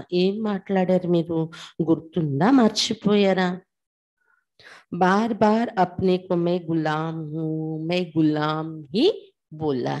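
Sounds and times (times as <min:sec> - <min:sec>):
woman speaking into a microphone: 0:00.0 - 0:03.7, 0:04.7 - 0:10.0.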